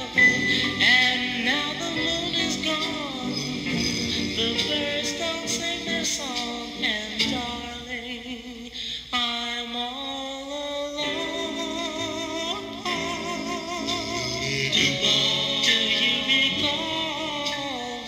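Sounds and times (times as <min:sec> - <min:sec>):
vocal group singing harmony: 0:00.0 - 0:07.9, 0:11.0 - 0:18.0.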